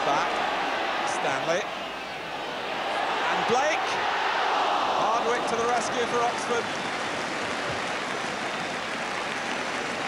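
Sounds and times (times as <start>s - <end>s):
large crowd noise: 0.0s - 10.0s.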